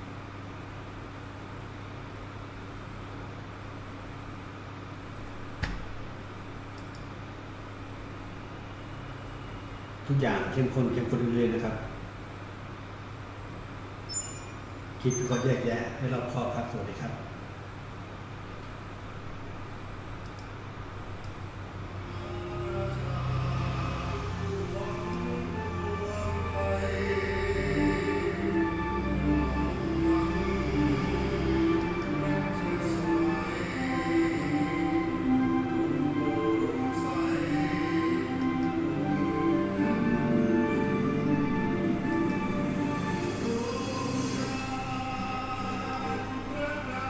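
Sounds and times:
room hum and hiss: 0.0 - 47.0
sustained background music notes: 21.8 - 47.0.

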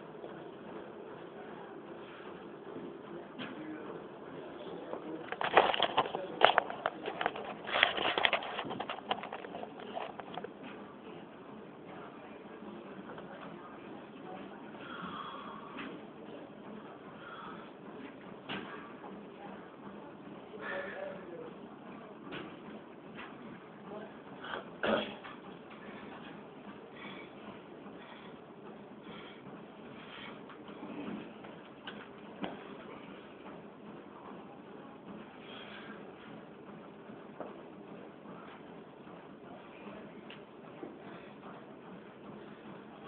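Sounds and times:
faint distant voices: 0.0 - 43.0.

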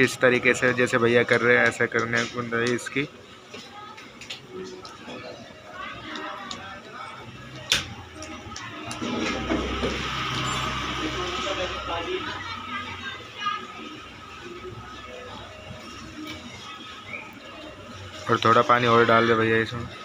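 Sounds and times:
faint music: 0.0 - 20.0.

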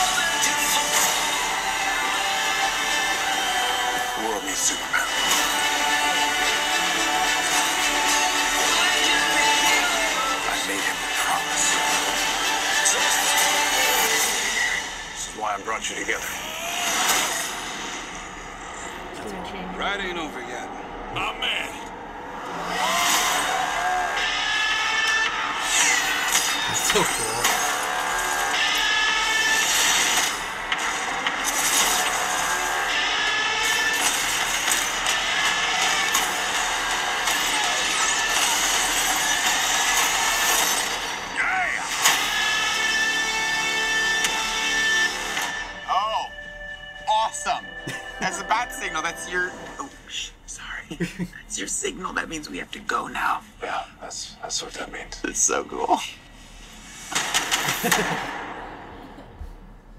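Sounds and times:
film trailer music: 0.0 - 50.8, 51.5 - 59.9
sound effects: 16.0 - 50.1
loud hit sound effect: 56.8 - 59.8.

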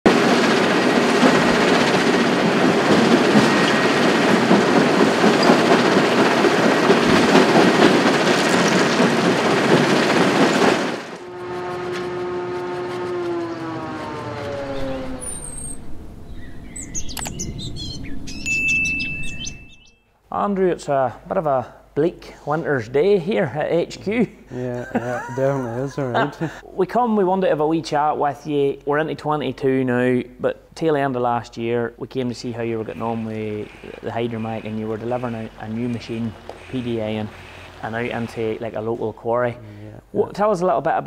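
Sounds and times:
falling tones: 11.2 - 20.0
short high chirps: 16.8 - 20.1
steady high beep: 18.3 - 20.0.

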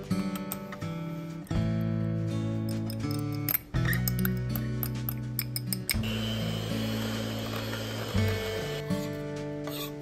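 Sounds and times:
background music sustained notes: 0.0 - 10.0
electric hand mixer whirring: 6.0 - 9.1.

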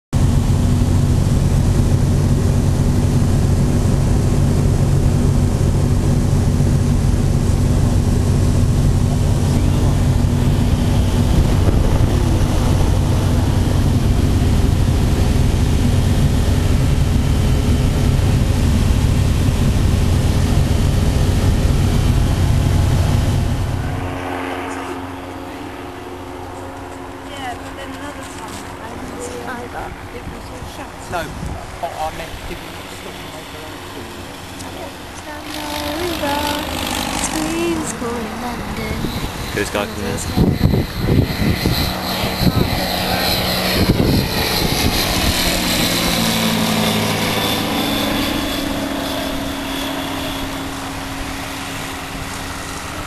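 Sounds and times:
aircraft engine and propeller drone: 0.2 - 53.0.

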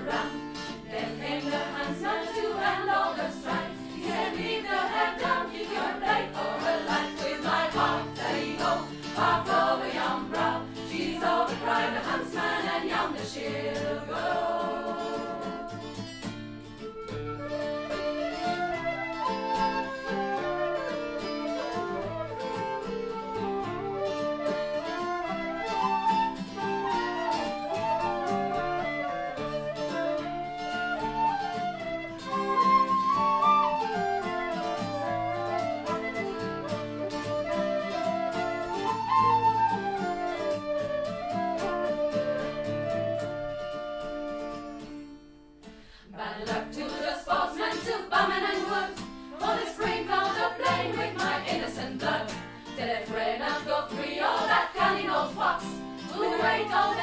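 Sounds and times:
strummed acoustic guitar: 0.0 - 57.0
flute and whistles melody: 2.0 - 13.0, 15.7 - 45.3, 54.2 - 57.0.

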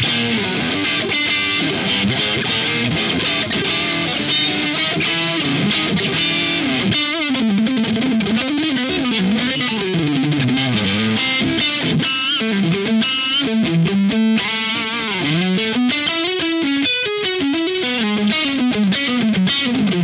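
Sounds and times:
distorted electric guitar lead: 0.0 - 20.0.

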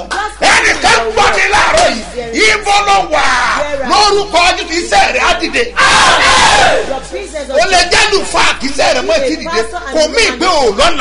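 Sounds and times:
man shouting: 0.4 - 7.0, 7.6 - 11.0.

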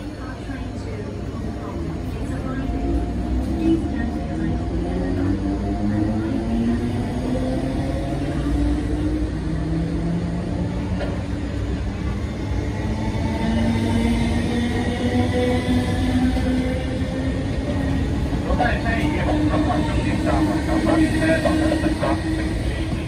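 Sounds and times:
wheels rumbling on rail: 0.0 - 23.0.

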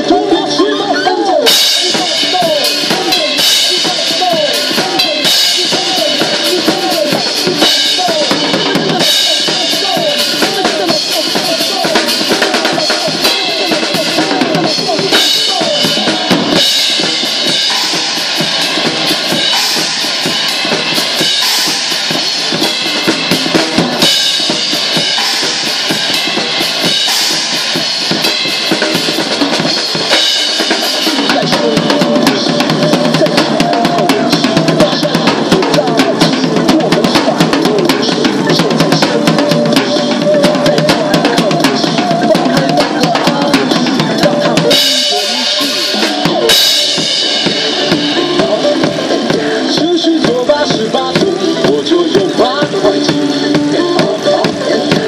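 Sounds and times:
crash and ride cymbals: 1.5 - 55.0.

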